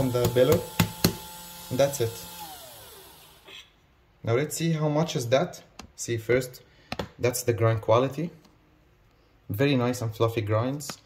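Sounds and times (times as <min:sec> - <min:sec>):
grinder motor spinning down: 0:00.0 - 0:03.5.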